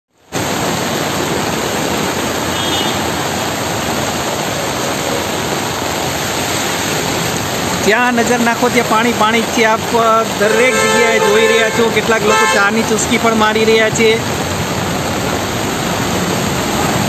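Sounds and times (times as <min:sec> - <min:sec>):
heavy rain on flooded street: 0:00.1 - 0:17.0
brief high tone: 0:10.4 - 0:12.6.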